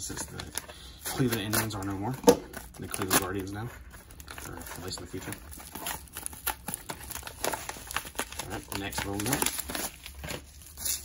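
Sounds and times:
plastic mailer crinkling: 0.0s - 11.0s.

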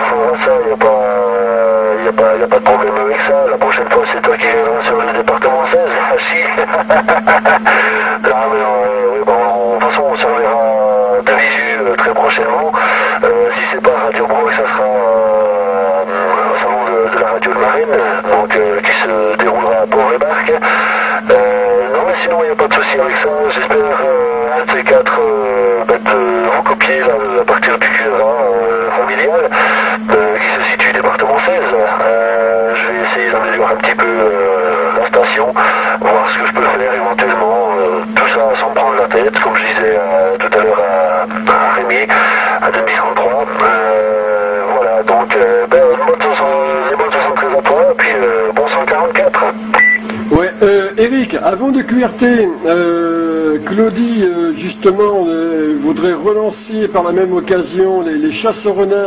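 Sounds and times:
steady low hum: 0.0s - 59.0s
voice talking over cb radio: 0.0s - 59.0s.

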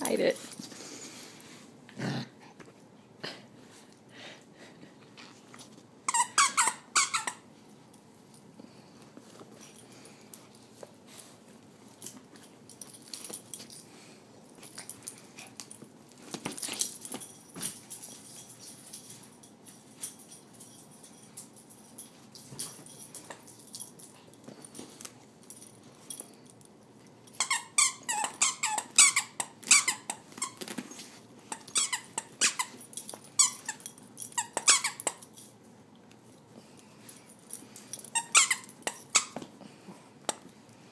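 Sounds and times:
dog toy squeaking: 6.1s - 7.4s, 27.4s - 30.6s, 31.5s - 32.7s, 34.4s - 35.2s, 38.1s - 39.4s.

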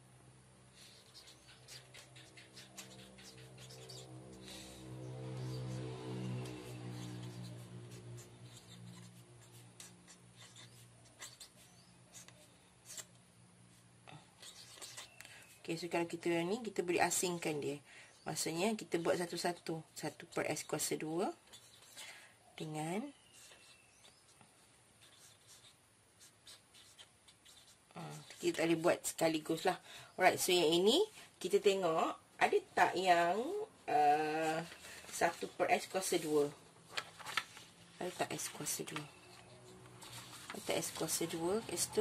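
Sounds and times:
faint low hum: 0.0s - 42.0s
marker pen scratching on paper: 0.8s - 13.1s, 14.4s - 16.0s, 18.9s - 22.1s, 23.0s - 29.7s, 38.0s - 42.0s.

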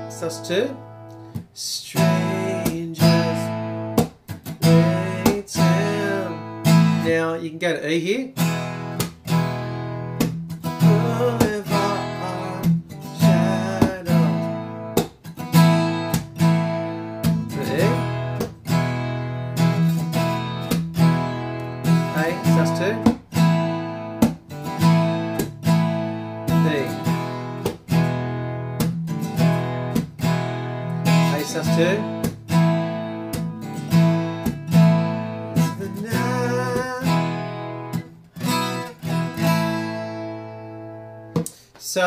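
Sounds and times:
acoustic guitar strumming: 0.0s - 41.6s.

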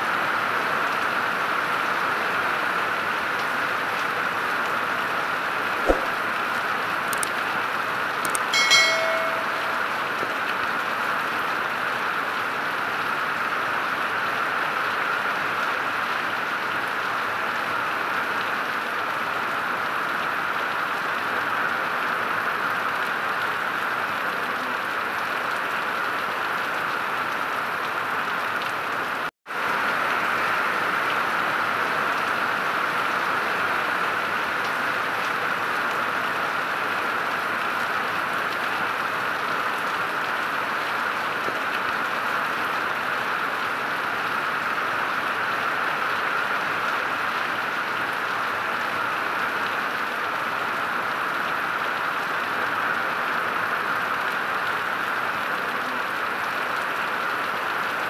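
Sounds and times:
heavy rain on paving and trees: 0.0s - 58.0s.

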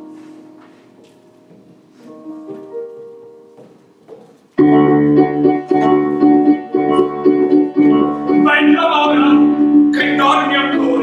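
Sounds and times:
keyboard playing repeated chords: 4.6s - 11.0s.

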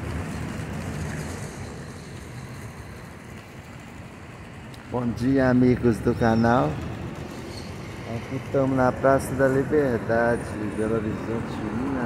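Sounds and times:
distant city traffic rumble: 0.0s - 12.0s.

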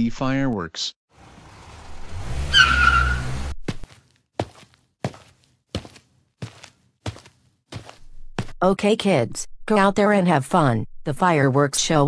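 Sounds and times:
tyre squeal: 2.5s - 3.3s
footsteps: 3.6s - 8.6s.

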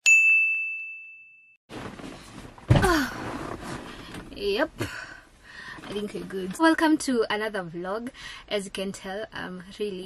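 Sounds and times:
bright bell ding: 0.0s - 1.6s.

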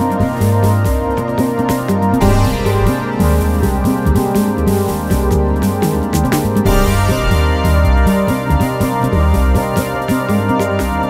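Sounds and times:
synthesizer keyboard chords and bass: 0.0s - 11.0s
percussion hits: 2.2s - 9.3s.

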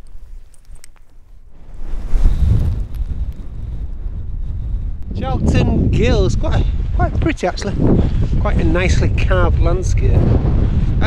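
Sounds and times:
wind buffeting microphone: 1.4s - 11.0s.

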